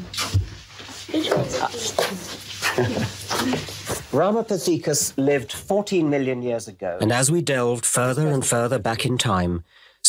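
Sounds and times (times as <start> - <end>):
children laughing: 2.6 - 3.7.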